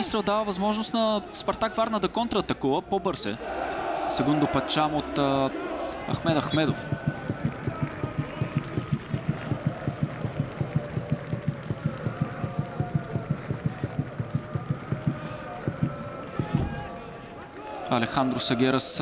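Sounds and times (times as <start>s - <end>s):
crowd voices: 3.4s - 19.0s
drum beaten in fast rhythm: 6.2s - 16.7s.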